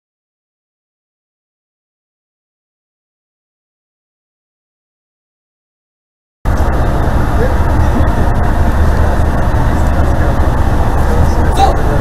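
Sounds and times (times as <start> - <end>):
ship machinery: 6.5 - 12.0.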